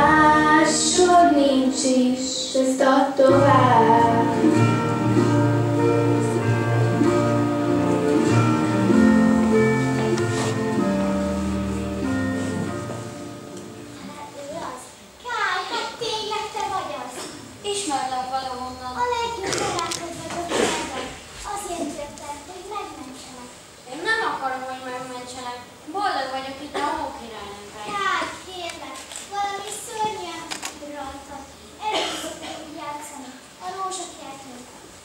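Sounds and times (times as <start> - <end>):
background music held tones: 0.0 - 14.7
child speaking: 14.0 - 24.4, 27.7 - 34.8.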